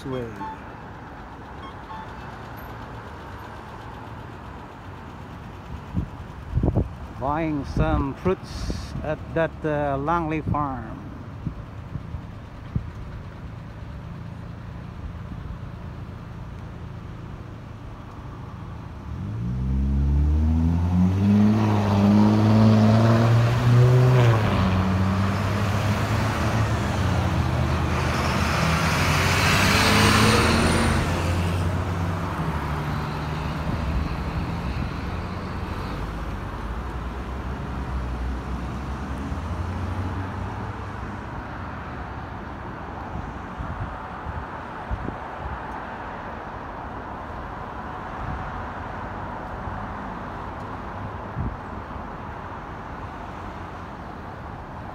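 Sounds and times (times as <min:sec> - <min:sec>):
street traffic: 0:00.0 - 0:54.9
tyre and road noise: 0:00.0 - 0:54.9
truck engine pulling away: 0:19.0 - 0:40.8.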